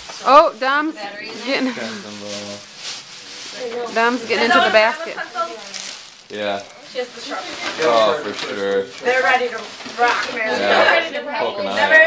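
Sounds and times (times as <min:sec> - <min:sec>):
gift-wrap and tissue paper rustling: 0:00.0 - 0:11.2
people talking: 0:00.2 - 0:02.6, 0:03.6 - 0:12.0.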